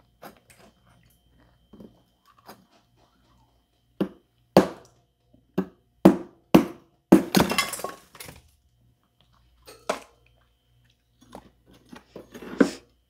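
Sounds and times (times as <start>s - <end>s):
ice being chewed: 0.0s - 3.9s, 9.0s - 12.9s.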